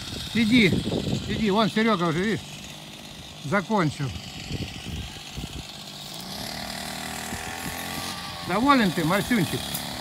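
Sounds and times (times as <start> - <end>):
small engine droning: 0.0 - 10.0.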